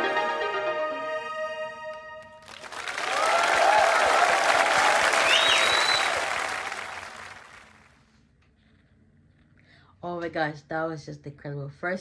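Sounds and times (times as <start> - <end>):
audience applauding and cheering: 2.2 - 8.0
whoops: 2.9 - 6.8
whistle: 5.1 - 6.5.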